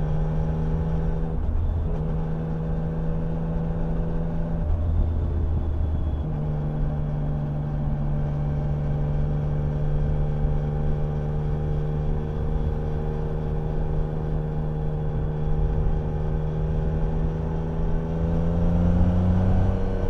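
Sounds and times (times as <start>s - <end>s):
motorcycle engine cruising: 0.0s - 20.0s
road noise: 0.0s - 20.0s.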